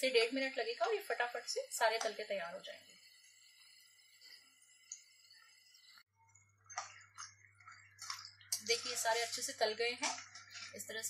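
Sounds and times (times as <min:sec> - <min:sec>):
chips sizzling in oil: 0:00.0 - 0:11.0.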